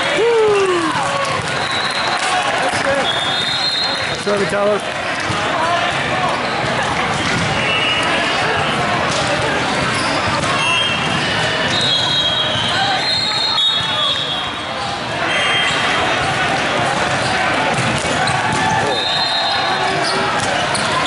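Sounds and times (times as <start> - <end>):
crowd chatter in echoing hall: 0.0 - 21.0
volleyballs bouncing and hit: 0.6 - 12.9, 16.0 - 19.0, 19.8 - 21.0.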